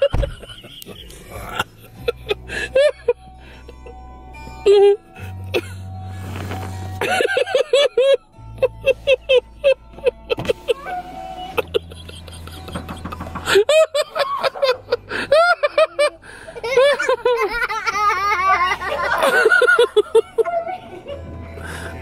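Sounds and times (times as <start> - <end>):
person laughing hard: 0.0 - 3.2, 7.0 - 21.8.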